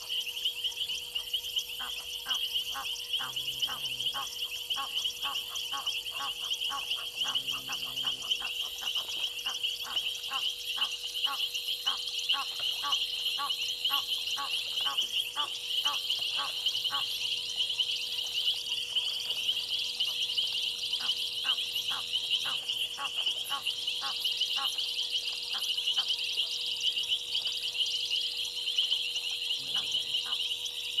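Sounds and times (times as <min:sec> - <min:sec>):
night insects chorus: 0:00.0 - 0:31.0
goose honking: 0:02.3 - 0:08.7.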